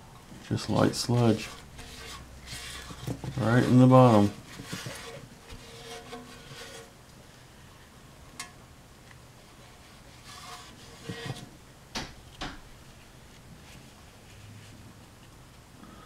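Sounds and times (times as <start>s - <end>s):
fingers scraping through oil sludge: 1.1s - 6.9s.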